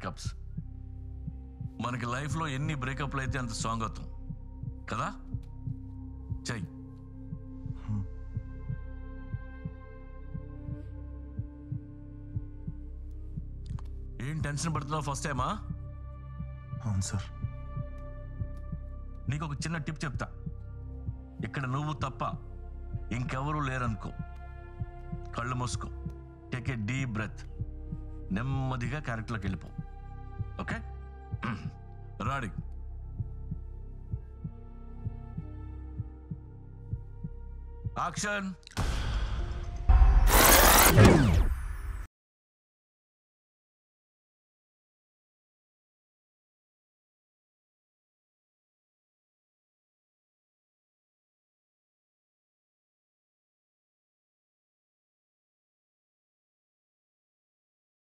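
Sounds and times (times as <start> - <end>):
low heartbeat-like thumping: 0.0 - 41.3.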